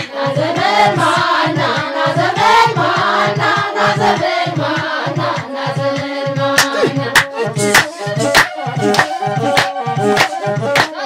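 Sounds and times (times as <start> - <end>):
men and women singing together: 0.0 - 9.7
steady low drum beat: 0.0 - 10.8.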